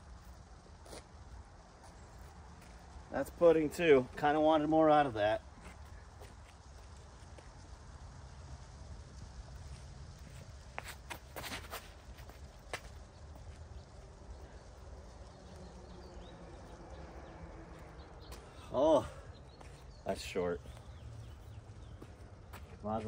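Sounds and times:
footfalls and shoe scuffs on concrete: 0:09.7 - 0:13.6, 0:19.5 - 0:20.0, 0:20.6 - 0:23.0.

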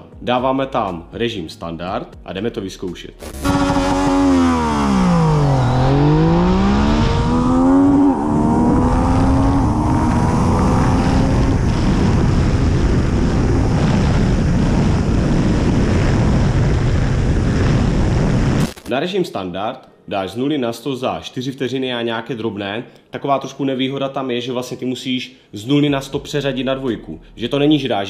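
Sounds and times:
motorcycle engine accelerating: 0:03.2 - 0:18.6
wind noise on microphone: 0:03.4 - 0:18.8.

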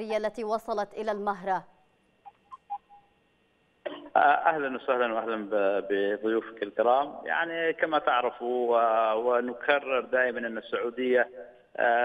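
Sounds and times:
man talking on phone line: 0:04.2 - 0:12.0.

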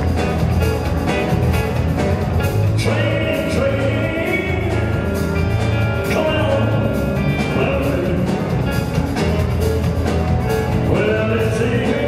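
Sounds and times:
rock and roll band playing: 0:00.0 - 0:12.0
man singing: 0:02.7 - 0:08.9, 0:10.7 - 0:12.0.

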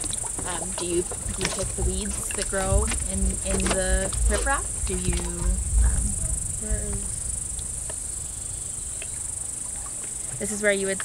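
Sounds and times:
insects trilling: 0:00.0 - 0:11.0
low wind rumble on microphone: 0:00.0 - 0:11.0.

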